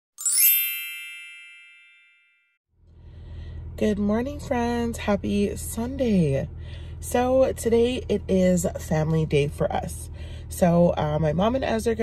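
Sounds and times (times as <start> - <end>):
bright bell-like chime: 0.2 - 2.6.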